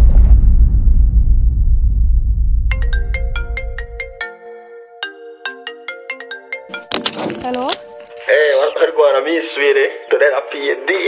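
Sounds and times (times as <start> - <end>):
deep rumble: 0.0 - 3.8
mobile phone ringtone: 2.7 - 8.7.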